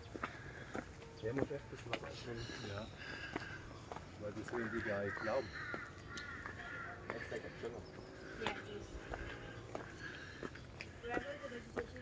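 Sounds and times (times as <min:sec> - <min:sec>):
bird making harsh calls: 0:04.4 - 0:07.2.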